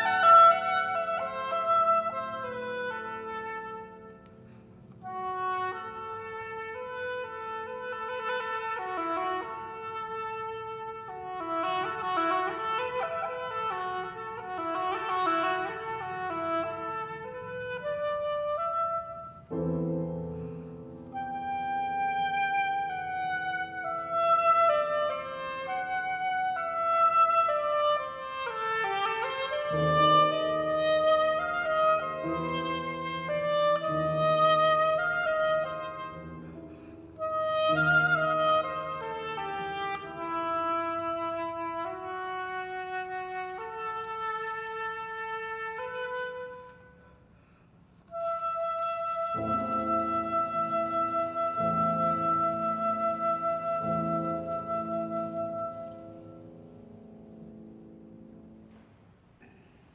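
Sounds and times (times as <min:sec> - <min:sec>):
piano accompaniment: 0:00.0 - 0:46.8, 0:48.1 - 0:59.4
oboe melody: 0:00.0 - 0:47.3, 0:48.0 - 0:58.8.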